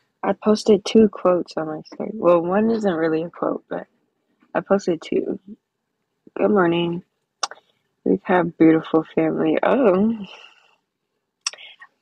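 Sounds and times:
woman speaking: 0.2s - 3.8s, 4.6s - 5.6s, 6.3s - 10.5s.

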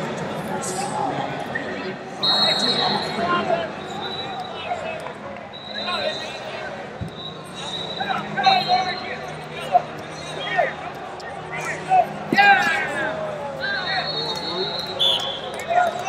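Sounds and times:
high whistle-like tones: 2.2s - 4.8s, 5.5s - 9.3s, 13.6s - 15.7s
people shouting: 11.6s - 14.0s.

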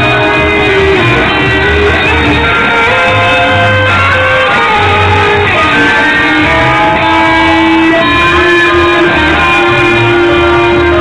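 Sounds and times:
loud electric guitar: 0.0s - 11.0s.

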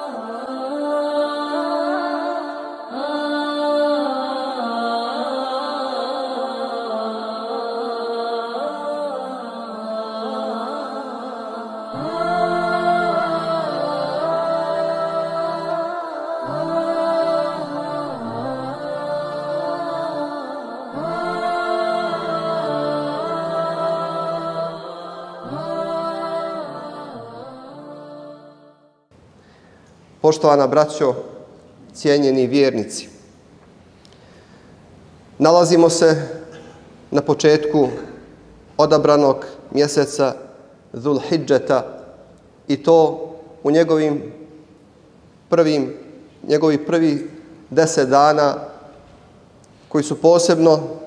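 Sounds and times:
person chanting slow melody: 0.0s - 29.0s.

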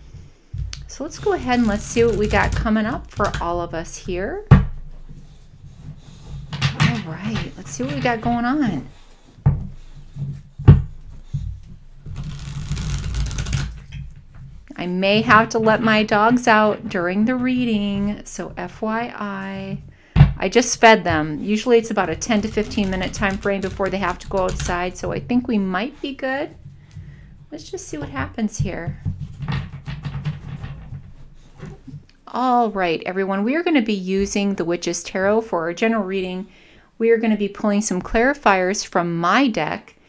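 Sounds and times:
cards riffling: 12.1s - 14.0s.

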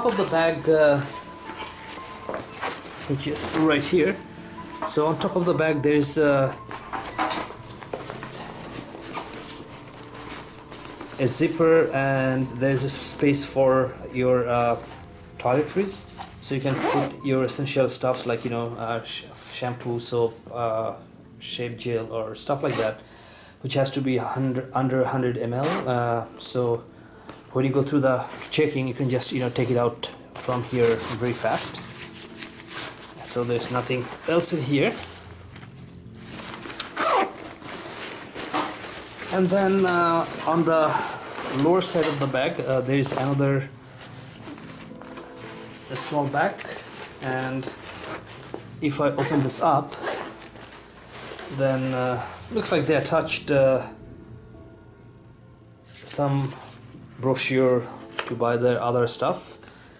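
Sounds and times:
fabric bag rustling: 0.0s - 18.8s, 27.4s - 53.1s
zipper pulled on bag: 16.7s - 17.1s, 25.6s - 25.9s, 30.4s - 39.4s, 44.3s - 48.6s, 49.2s - 52.0s.

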